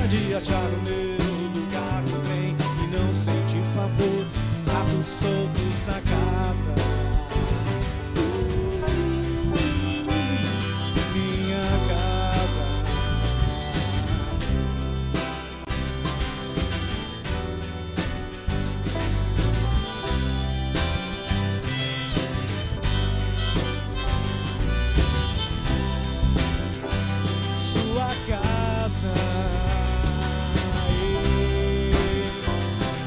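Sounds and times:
acoustic guitar: 0.0 - 33.0
bass notes: 0.0 - 33.0
drum beat: 0.0 - 33.0
piano: 0.0 - 33.0
sliding lead melody: 0.0 - 33.0.

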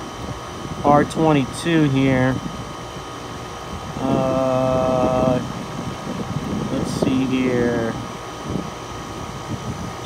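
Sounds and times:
heat pump humming: 0.0 - 10.0.

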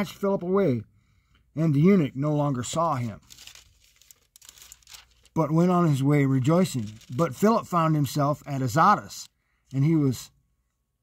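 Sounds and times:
thin pages rustling: 2.9 - 5.4, 6.5 - 7.5.

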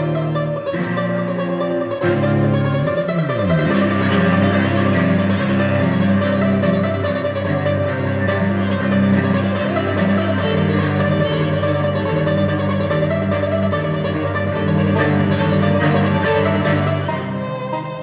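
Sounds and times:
banjo picking: 0.0 - 18.0
bowed violin: 0.0 - 18.0
sustained cello notes: 0.0 - 18.0.

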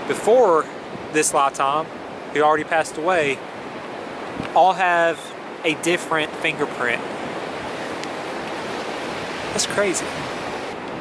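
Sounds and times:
ocean surf breaking: 0.0 - 11.0
wind on microphone: 0.7 - 1.2, 3.1 - 11.0.

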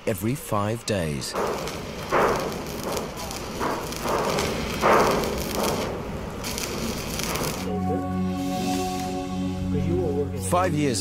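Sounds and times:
arc welding crackling: 1.1 - 7.8
music: 7.4 - 11.0.

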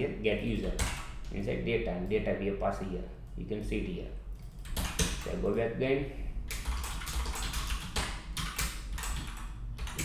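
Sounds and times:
computer keyboard typing: 0.5 - 1.1, 4.4 - 5.4, 6.5 - 10.0.

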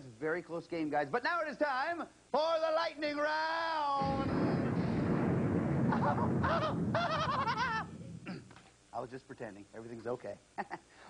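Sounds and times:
low rumble: 4.0 - 8.3.

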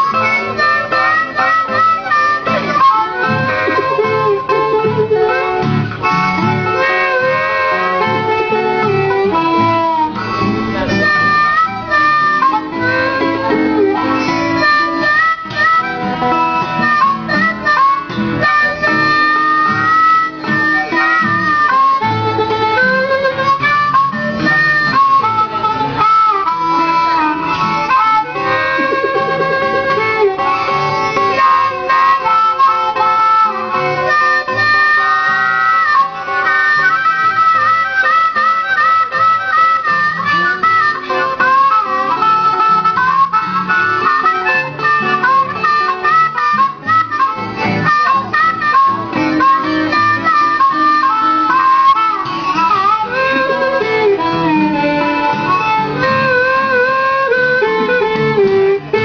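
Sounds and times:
blues harmonica playing: 0.0 - 59.0
guitar accompaniment: 0.0 - 59.0.

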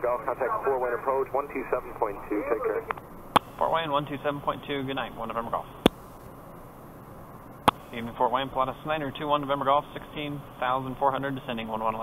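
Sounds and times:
headset intercom hiss: 0.0 - 4.2.

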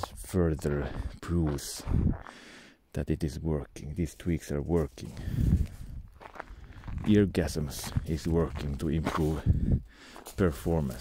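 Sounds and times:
footsteps on snowy gravel: 0.0 - 2.5, 4.0 - 11.0.

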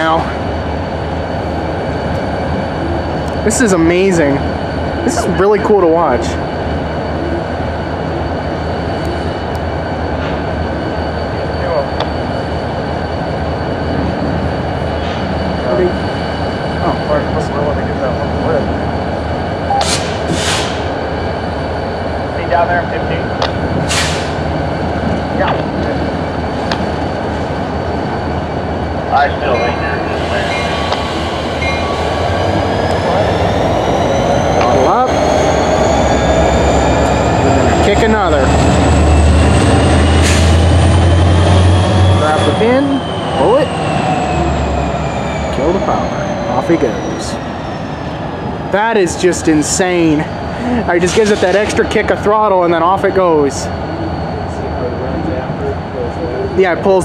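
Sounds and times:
diesel locomotive engine: 0.0 - 57.0
rising engine whine: 0.0 - 57.0.

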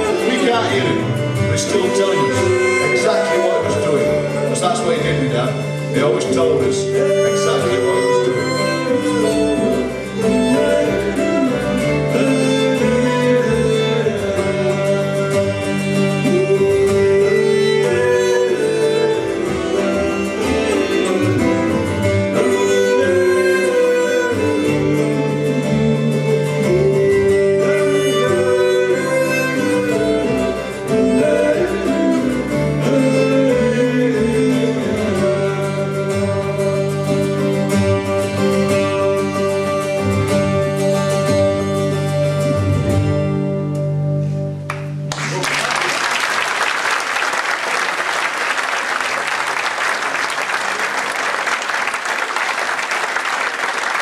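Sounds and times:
bowed fiddle: 0.0 - 44.7
double bass: 0.0 - 45.2
plucked guitar: 0.0 - 45.5.

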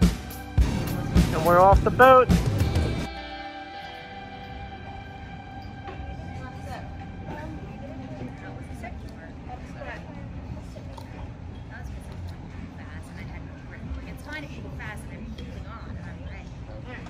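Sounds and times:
held musical chord: 0.3 - 8.8.

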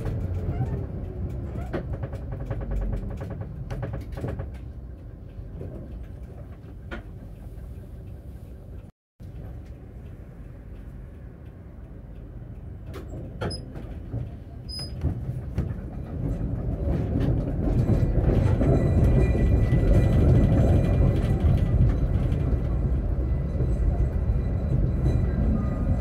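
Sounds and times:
tram motor and wheel rumble: 0.0 - 26.0.

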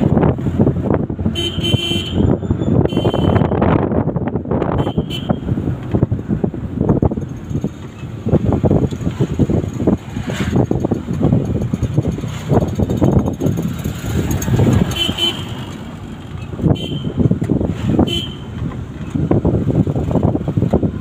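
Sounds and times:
vehicle road rumble: 0.0 - 21.0
wind buffeting microphone: 0.0 - 21.0.

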